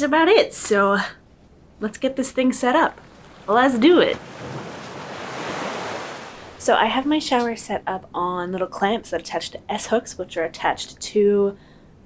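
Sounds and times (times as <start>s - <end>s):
ocean waves on beach: 2.9s - 6.7s.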